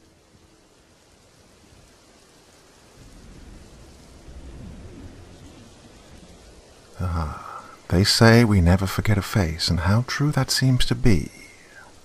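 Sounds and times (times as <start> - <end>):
steady rain: 0.0 - 12.0
thunder rumble: 1.3 - 10.4.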